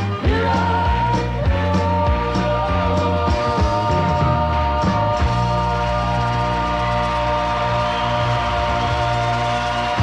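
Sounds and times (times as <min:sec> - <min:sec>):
vocal trio holding a chord: 0:00.0 - 0:10.0.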